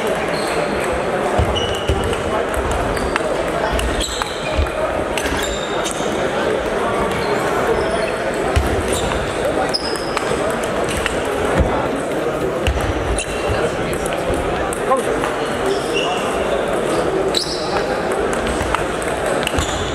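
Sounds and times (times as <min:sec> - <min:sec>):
hubbub of voices: 0:00.0 - 0:19.9
table tennis balls clicking: 0:17.7 - 0:19.9.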